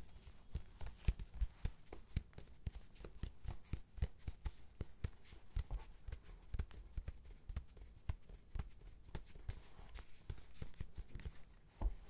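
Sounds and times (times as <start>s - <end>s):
fingertips tapping on padded cover: 0.0s - 12.0s.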